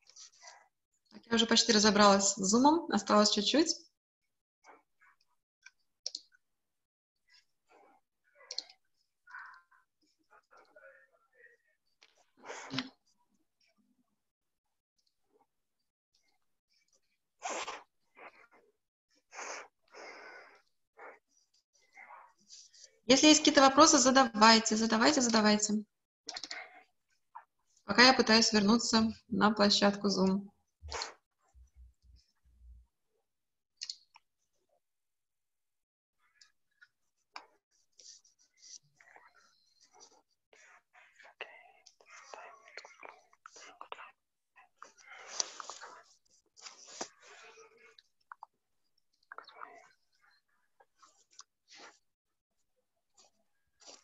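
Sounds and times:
woman whispering: 40.6s - 44.2s, 49.3s - 50.0s.

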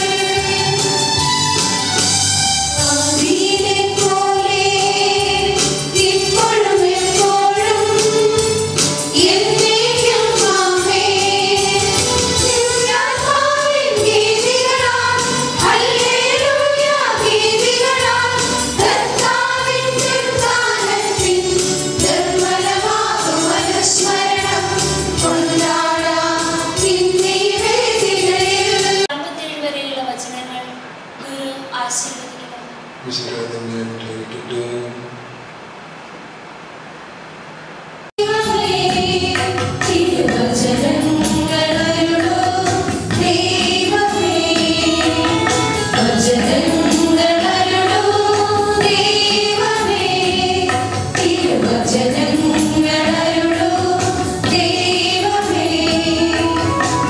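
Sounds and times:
choir singing a hymn: 0.0s - 1.3s, 2.8s - 29.1s, 38.3s - 57.0s.

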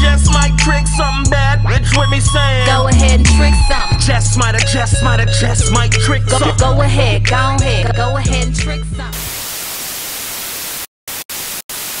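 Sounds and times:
hip-hop bass line: 0.0s - 9.3s
tv static hiss: 9.2s - 12.0s.

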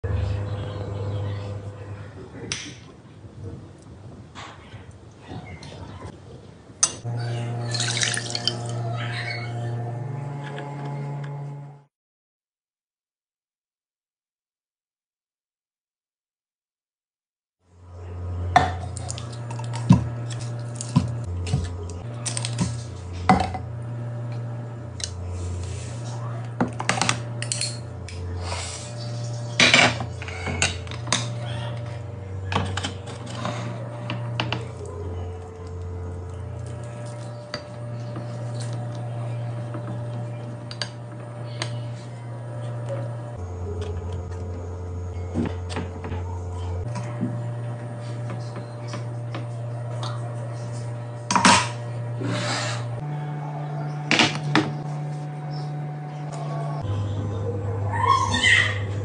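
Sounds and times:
faint low hum: 0.0s - 6.5s
dessert crunch: 18.8s - 23.3s.

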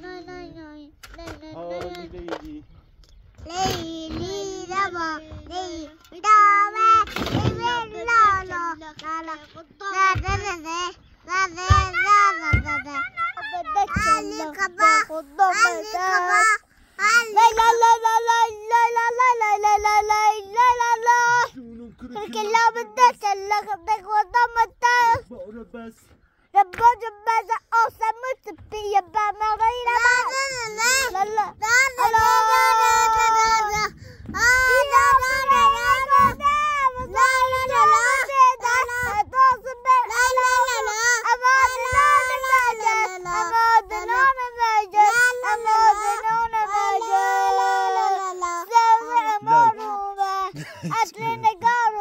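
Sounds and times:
child singing in a high voice: 0.0s - 2.4s, 3.4s - 25.3s, 26.5s - 52.0s
children singing together: 29.3s - 52.0s.

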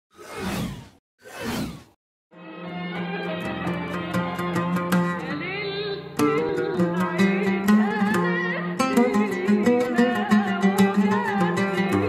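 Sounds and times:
whoosh sound effects: 0.1s - 2.0s.

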